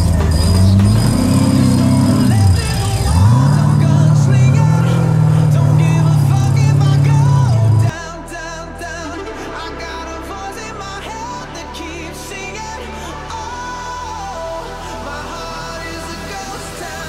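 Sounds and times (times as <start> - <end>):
buggy engine revving: 0.0 - 7.9
background music: 0.0 - 17.0.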